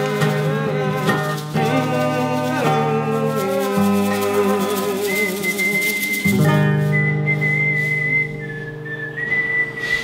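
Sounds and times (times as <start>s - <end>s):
acoustic guitar chord ringing: 0.0s - 10.0s
high whistled note: 4.0s - 10.0s.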